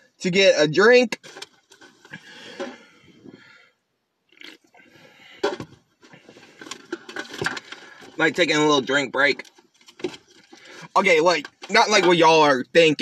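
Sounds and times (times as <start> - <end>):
person swallowing a drink: 4.3 - 4.9.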